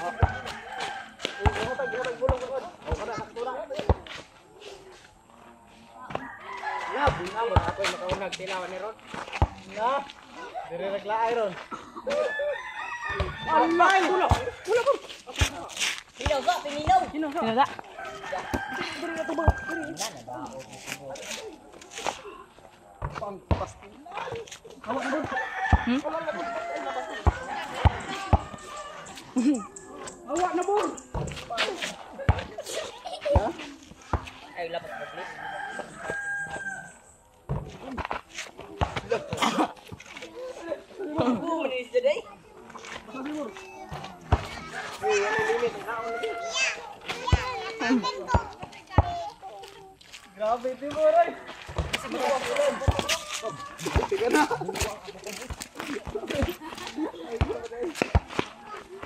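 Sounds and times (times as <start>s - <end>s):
rooster crowing: 0.0s - 2.3s, 6.1s - 8.2s, 12.1s - 15.0s, 17.8s - 20.1s, 25.0s - 29.7s, 34.8s - 37.0s, 44.7s - 46.8s, 51.4s - 54.2s
children talking and calling out: 0.0s - 8.4s, 9.0s - 23.1s, 23.9s - 59.0s
voices: 0.0s - 59.0s.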